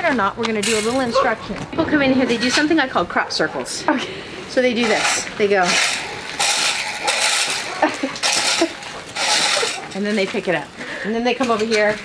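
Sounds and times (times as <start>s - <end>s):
metal rake scraping dirt: 2.1s - 3.3s, 4.5s - 10.6s.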